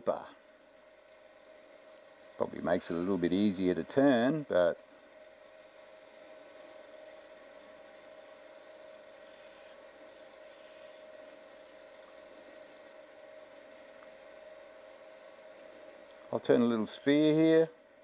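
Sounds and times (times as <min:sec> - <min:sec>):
wood lathe humming and whining: 0:09.0 - 0:11.6.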